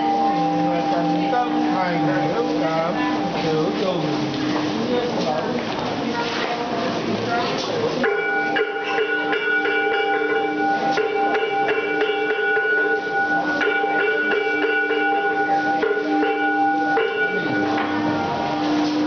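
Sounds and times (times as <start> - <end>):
bell-like ringing tones: 0.0 - 4.1, 8.0 - 19.0.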